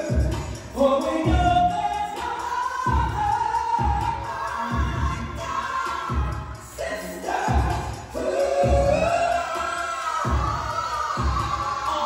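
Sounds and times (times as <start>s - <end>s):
music accompaniment with low beat: 0.0s - 12.0s.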